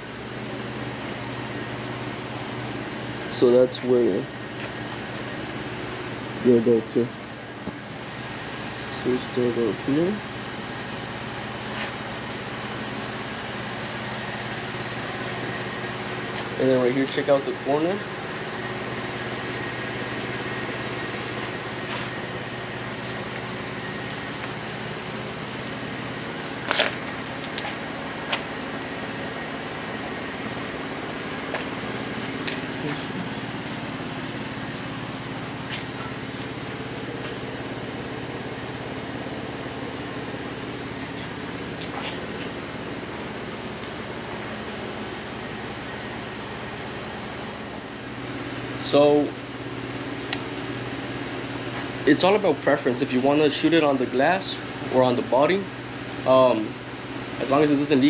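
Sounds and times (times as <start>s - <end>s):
machine hum: 0.0s - 58.0s.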